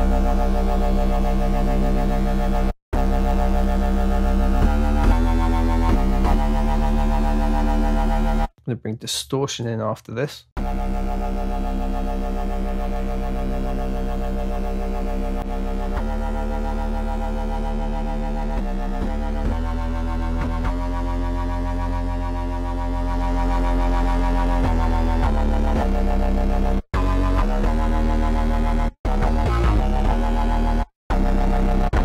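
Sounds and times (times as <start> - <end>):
distorted synth bass: 0.0 - 8.5, 10.6 - 32.0.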